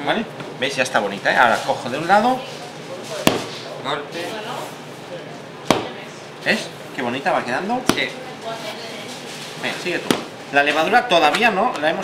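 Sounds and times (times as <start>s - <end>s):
dough slapped on table: 3.2s - 3.6s, 5.7s - 6.0s, 10.1s - 10.3s.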